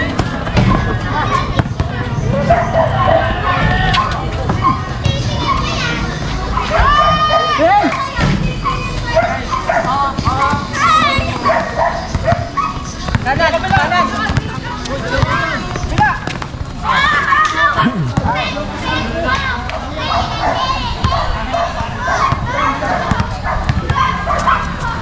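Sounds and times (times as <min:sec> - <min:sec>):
people shouting and calling out: 0:00.0 - 0:25.0.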